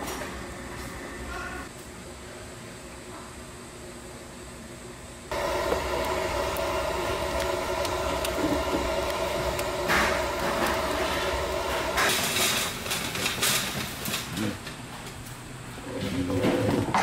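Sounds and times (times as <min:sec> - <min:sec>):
gas torch rushing burn: 0:05.3 - 0:14.1
wood crackling: 0:05.3 - 0:14.6.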